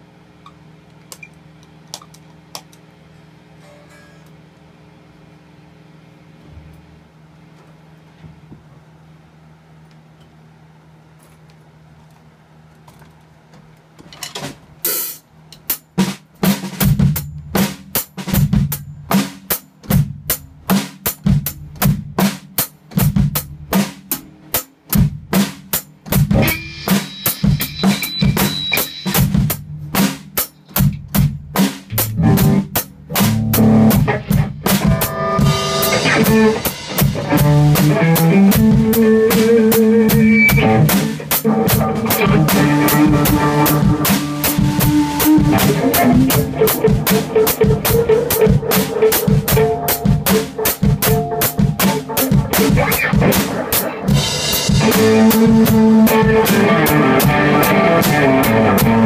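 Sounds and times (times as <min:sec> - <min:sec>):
steady low hum: 0:00.0 - 0:14.0, 0:14.6 - 0:59.0
drum kit beat: 0:14.8 - 0:59.0.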